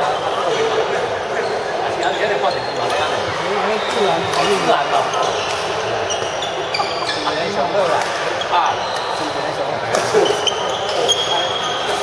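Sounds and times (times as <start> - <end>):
shoes squeaking on floor: 0.0 - 12.0.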